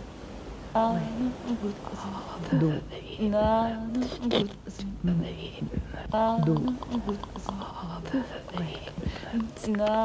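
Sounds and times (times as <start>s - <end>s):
woman's voice sound poetry: 0.8s - 10.0s
breathy hisses: 5.3s - 9.6s
mouth clicks: 5.5s - 10.0s.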